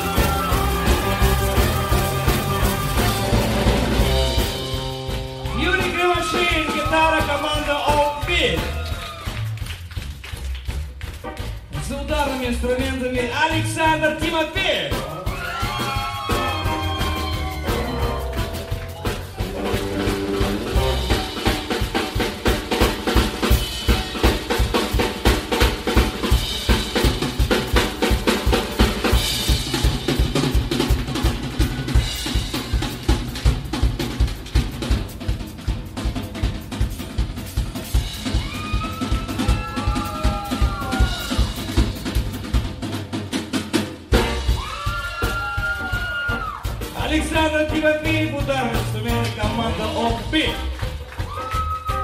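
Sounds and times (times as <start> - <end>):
bass line: 0.0 - 43.2, 44.0 - 52.0
drum solo: 0.0 - 52.0.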